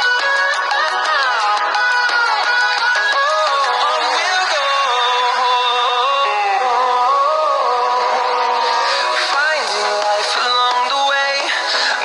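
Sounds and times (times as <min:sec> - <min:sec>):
pop song with sung vocals: 0:00.0 - 0:12.0.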